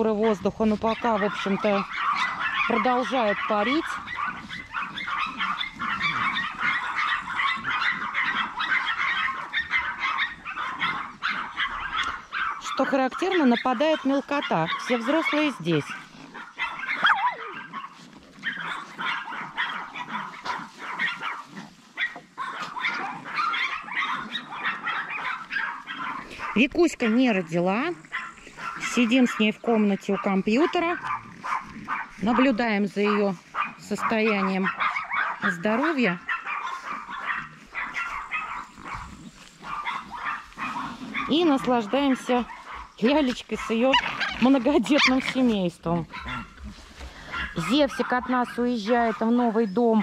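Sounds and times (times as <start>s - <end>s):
puppies yapping and barking: 0.0s - 50.0s.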